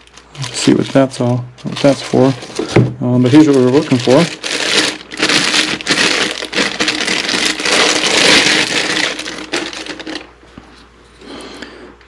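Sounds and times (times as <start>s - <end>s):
plastic bag crinkling: 0.0s - 10.5s.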